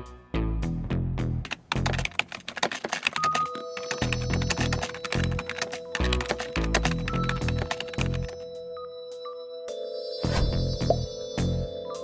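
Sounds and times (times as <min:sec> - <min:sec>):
keyboard typing clicks: 0:01.4 - 0:08.4.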